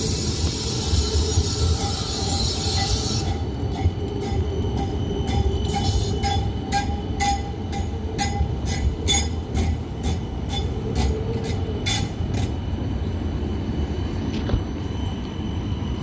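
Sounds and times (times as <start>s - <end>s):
electric tram running on track: 0.0s - 16.0s.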